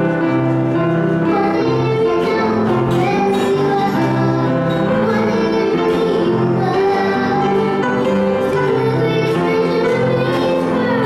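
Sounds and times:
acoustic guitar: 0.0s - 11.0s
piano: 0.0s - 11.0s
girl singing into microphone: 1.1s - 11.0s.

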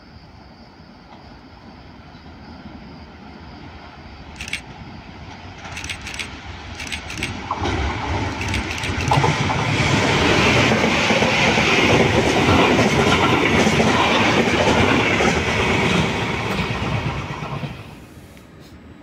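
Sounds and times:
freight train running past: 1.2s - 19.0s.

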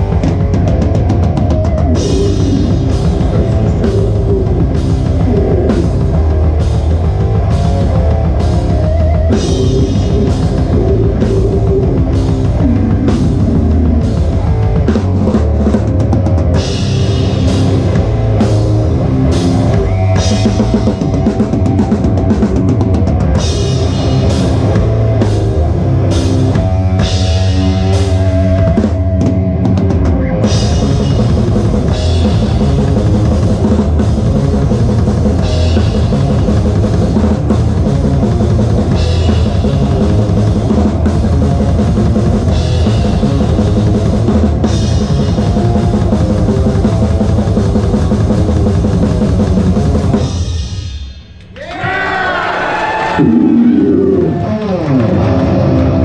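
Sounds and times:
distorted guitars and bass: 0.0s - 56.0s.

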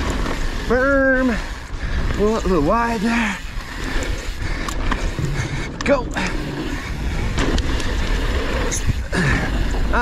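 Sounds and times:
bike clicks and rattles: 0.0s - 10.0s
bike tyre rumble on dirt: 0.0s - 10.0s
wind buffeting microphone: 0.0s - 10.0s.

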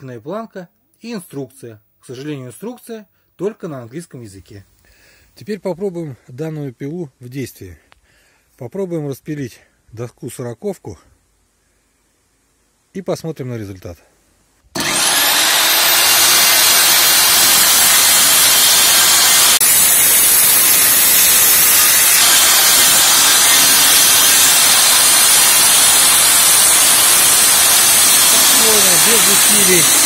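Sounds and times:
circular saw cutting board: 14.8s - 30.0s.

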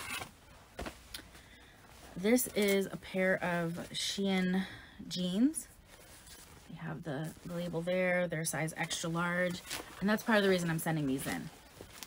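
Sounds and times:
clothing rustling: 0.0s - 4.6s, 5.2s - 12.0s.

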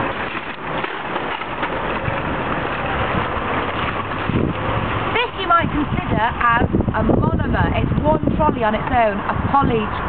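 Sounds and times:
shopping trolley rattling on tarmac: 0.0s - 10.0s.

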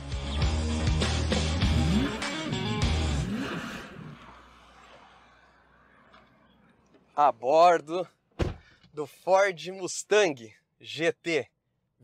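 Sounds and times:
car engine revving: 1.1s - 6.6s.

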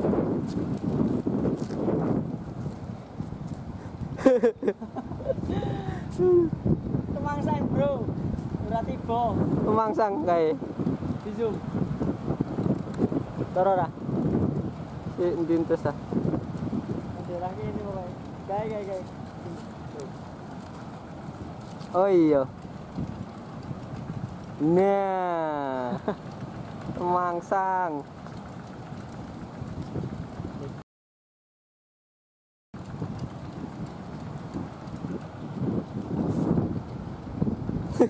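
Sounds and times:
wind rumbling on microphone: 0.0s - 30.8s, 32.8s - 38.0s.

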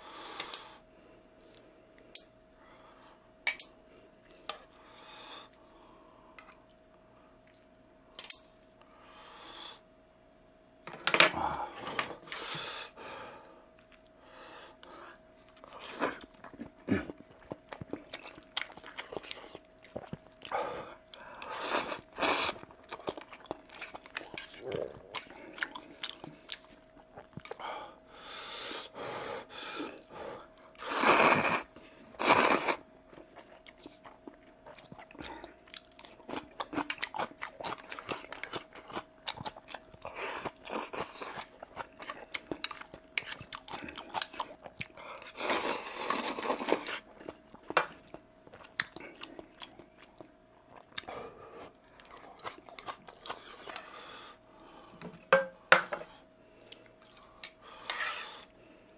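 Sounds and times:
wet chewing and crunching: 15.3s - 27.7s, 29.9s - 54.1s.

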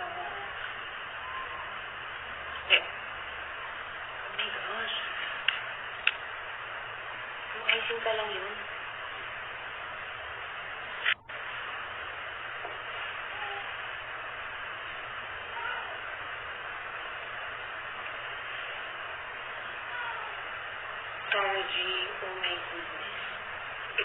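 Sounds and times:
recording hiss: 0.0s - 24.0s.

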